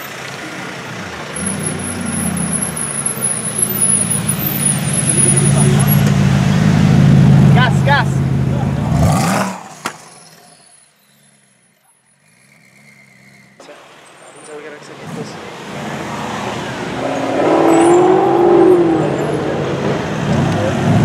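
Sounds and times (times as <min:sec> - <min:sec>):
car engine passing at low revs: 0:14.4 - 0:21.0.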